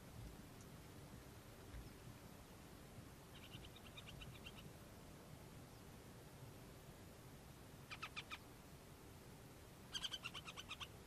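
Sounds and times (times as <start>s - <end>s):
faint hiss and low rumble: 0.0s - 11.0s.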